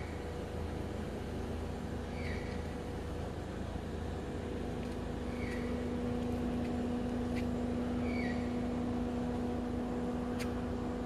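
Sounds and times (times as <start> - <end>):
car engine idling: 0.0 - 11.0
bird chirping: 2.1 - 2.6, 5.3 - 5.8, 8.0 - 8.6.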